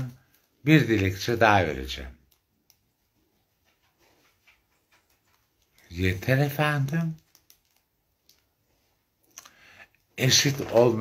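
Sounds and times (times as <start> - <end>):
faint small clicks: 2.2 - 3.0, 6.8 - 8.5, 9.2 - 10.1.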